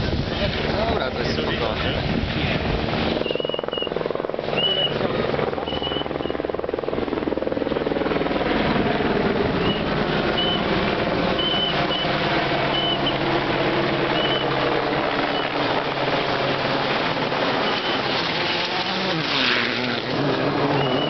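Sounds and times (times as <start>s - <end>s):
helicopter rotor chopping: 0.0s - 21.0s
rally car engine: 17.6s - 21.0s.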